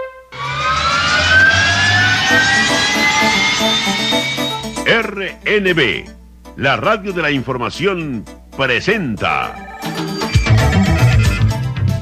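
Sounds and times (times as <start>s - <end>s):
long rising whoosh: 0.3s - 5.0s.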